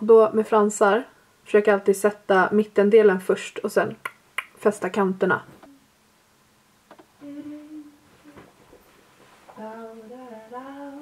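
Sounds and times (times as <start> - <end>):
woman humming: 7.2 - 8.5.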